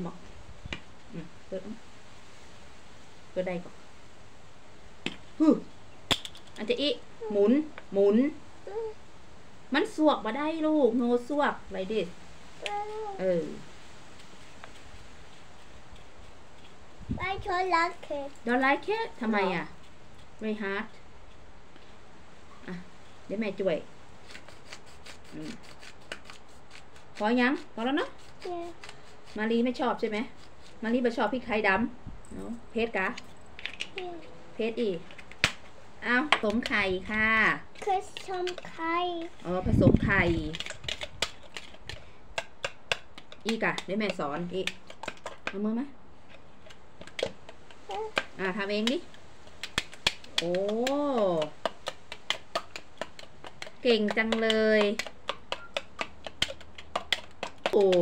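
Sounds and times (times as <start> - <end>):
whisk tapping plastic jug: 47.2 - 58.0.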